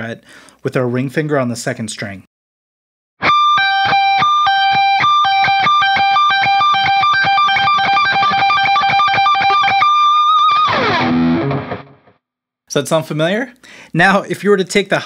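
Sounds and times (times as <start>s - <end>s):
electric guitar fast lick: 3.2s - 12.1s.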